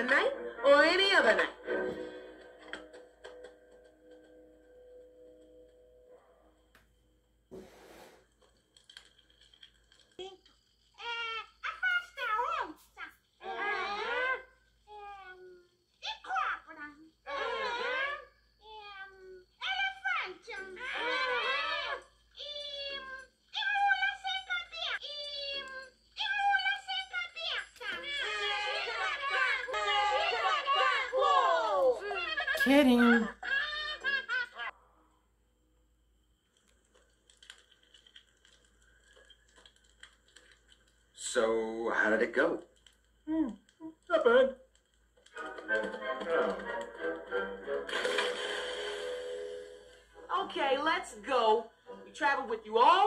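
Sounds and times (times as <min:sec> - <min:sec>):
film soundtrack through laptop speakers: 0:00.0 - 0:53.0.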